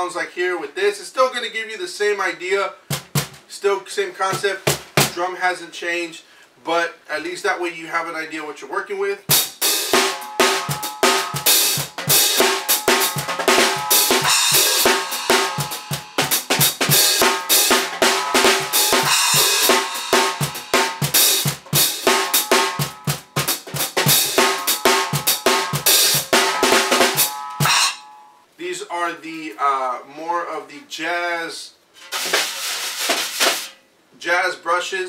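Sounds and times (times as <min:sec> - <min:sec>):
drum groove played with whips: 0:02.8 - 0:03.5, 0:04.2 - 0:05.3, 0:09.3 - 0:28.1, 0:32.0 - 0:33.8.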